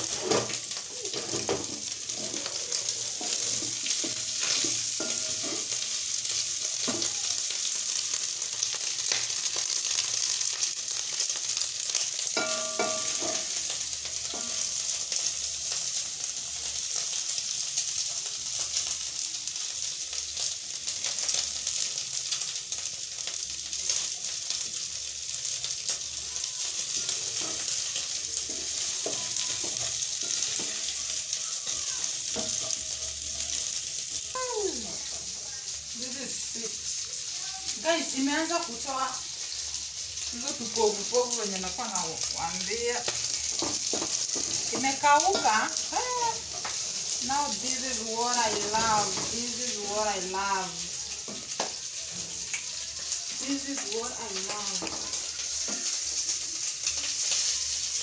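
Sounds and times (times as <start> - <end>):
tripe sizzling in a pan: 0.0 - 58.0.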